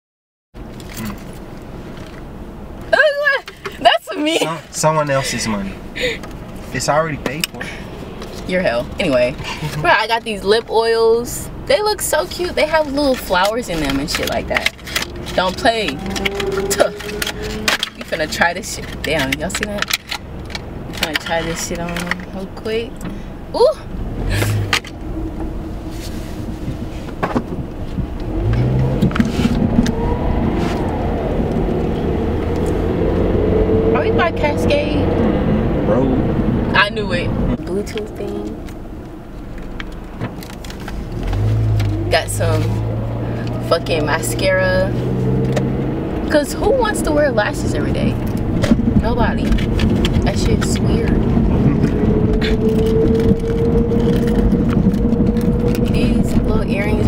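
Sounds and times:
car engine and road noise: 0.5 - 57.0
thin rising tone: 28.6 - 37.6.

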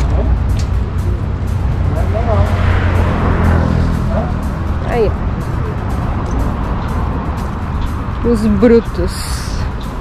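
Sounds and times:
low rumbling noise: 0.0 - 10.0.

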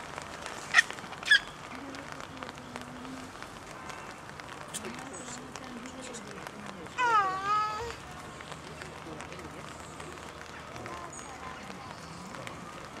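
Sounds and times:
faint murmur of voices: 1.6 - 13.0.

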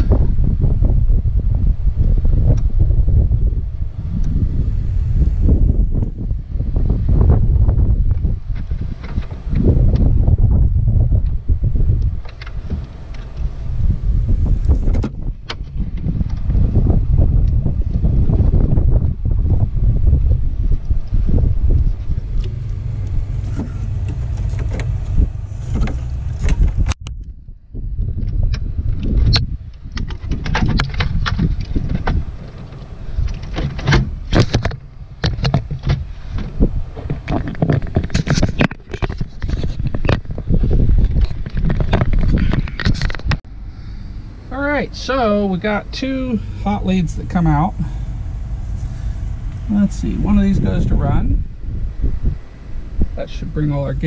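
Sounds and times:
wind buffeting microphone: 0.0 - 54.0
clicks and rustles of wires: 20.7 - 27.4, 28.0 - 43.4.

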